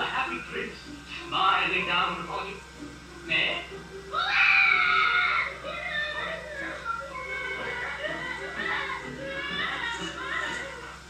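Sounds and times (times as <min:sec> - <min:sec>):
cartoon soundtrack music: 0:00.0 - 0:11.0
child crying out: 0:04.1 - 0:06.5.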